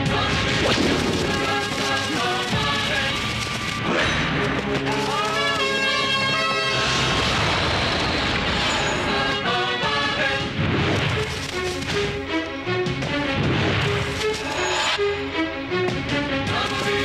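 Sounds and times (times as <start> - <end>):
dramatic action film score: 0.0 - 17.0.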